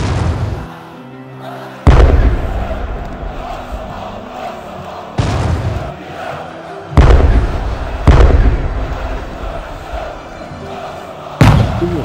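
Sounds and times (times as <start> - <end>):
crowd noise: 0.0 - 12.0
fireworks booming: 7.0 - 8.8, 11.4 - 11.9.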